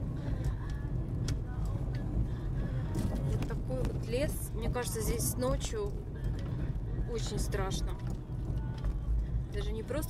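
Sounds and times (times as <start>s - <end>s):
car road noise rumble: 0.0s - 10.0s.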